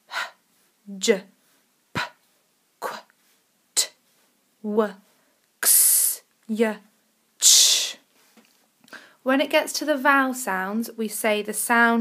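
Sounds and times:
woman saying phonics sound: 2.8s - 3.1s.

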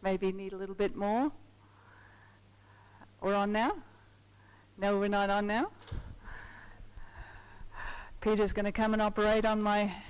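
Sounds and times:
low electrical hum: 0.0s - 10.0s
microphone handling bumps: 5.8s - 6.9s
soft breathy sounds: 6.2s - 8.2s.

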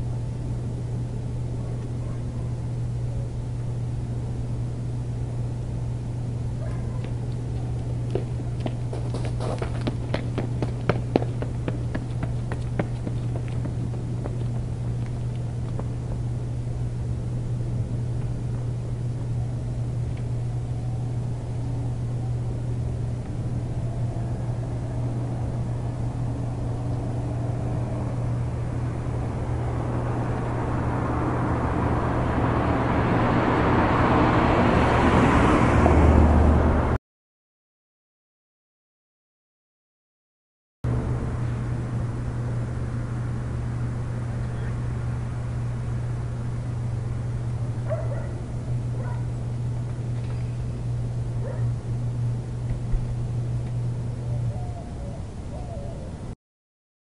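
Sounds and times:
steady low hum: 0.0s - 37.0s, 40.9s - 56.4s
vehicle rushing noise: 23.7s - 37.0s.

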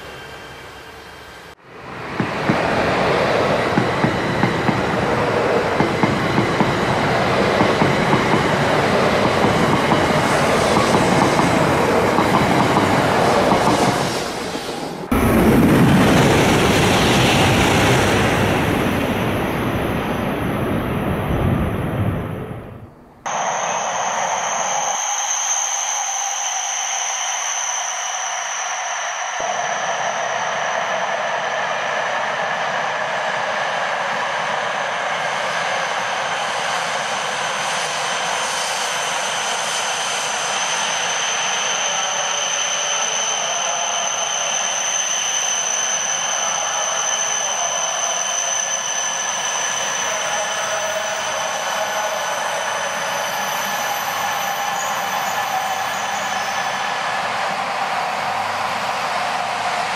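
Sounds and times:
train rolling noise: 0.0s - 59.9s
low rumble: 15.1s - 23.2s.

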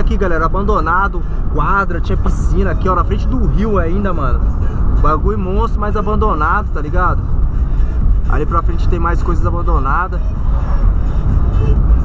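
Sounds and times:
engine and road rumble in car: 0.0s - 12.0s.

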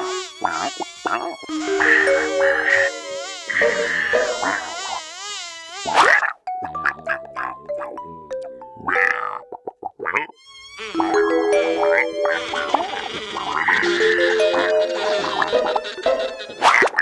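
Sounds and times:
cartoon insect buzzing: 0.0s - 6.1s, 10.6s - 17.0s
falling musical notes: 1.5s - 4.4s, 10.8s - 16.7s.

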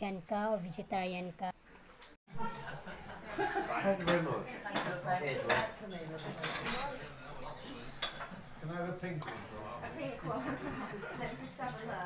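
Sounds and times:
cutlery clinking on china plate: 4.0s - 7.0s.

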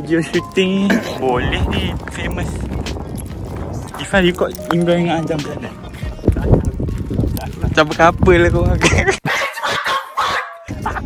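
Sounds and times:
tinny dog yelping and barking: 9.4s - 10.7s.

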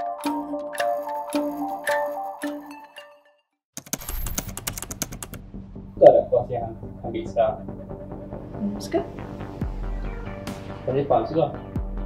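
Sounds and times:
keyboard key clicks: 3.8s - 5.4s.

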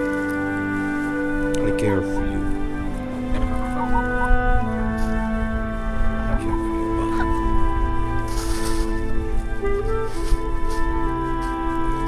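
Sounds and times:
slow background music: 0.0s - 12.0s.

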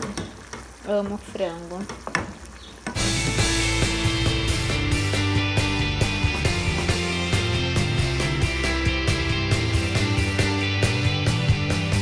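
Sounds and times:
faint sizzling: 0.0s - 4.9s
instrumental music with steady beat: 3.0s - 12.0s.

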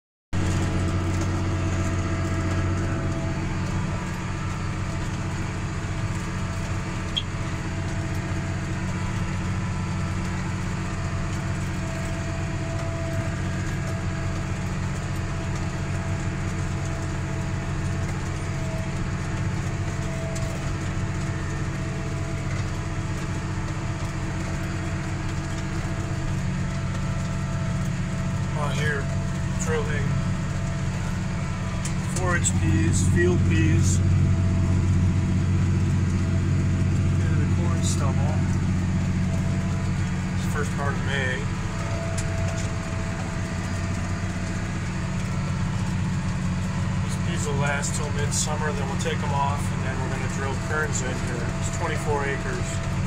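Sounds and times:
tractor engine running under load: 0.4s - 53.0s.

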